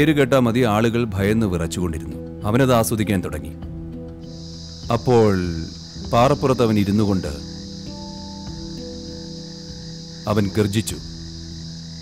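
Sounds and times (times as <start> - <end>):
crickets chirring: 0.0 - 12.0
low music drone: 3.6 - 12.0
man speaking: 10.3 - 11.1.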